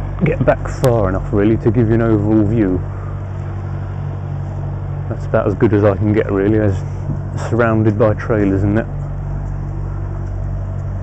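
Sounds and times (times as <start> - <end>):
diesel lorry engine idling: 0.0 - 11.0.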